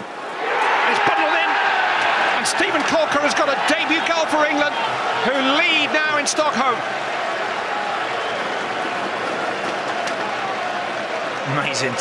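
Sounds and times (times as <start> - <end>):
stadium crowd cheering and applauding: 0.0 - 12.0.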